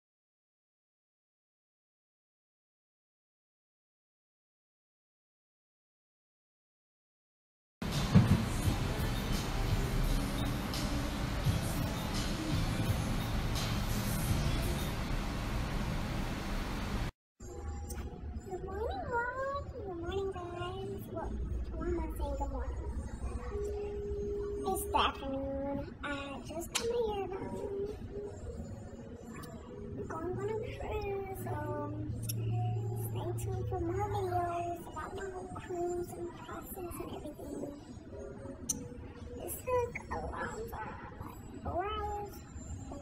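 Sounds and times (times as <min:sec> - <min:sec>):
woman speaking in high pitch: 0:18.5 - 0:22.9, 0:24.6 - 0:28.0, 0:30.0 - 0:37.8, 0:39.4 - 0:43.0.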